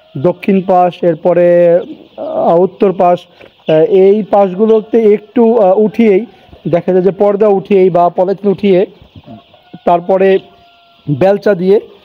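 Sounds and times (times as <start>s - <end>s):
chicks peeping: 0.0s - 12.0s
man speaking: 0.1s - 10.5s, 11.1s - 12.0s.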